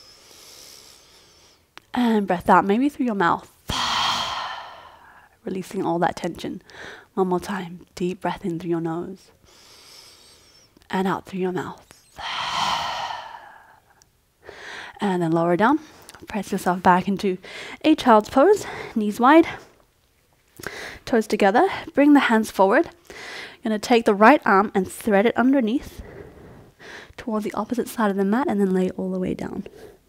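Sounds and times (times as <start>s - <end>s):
woman inhaling through nose: 0.0s - 1.7s, 12.1s - 14.9s
woman exhaling deeply: 3.7s - 5.3s, 12.2s - 13.9s.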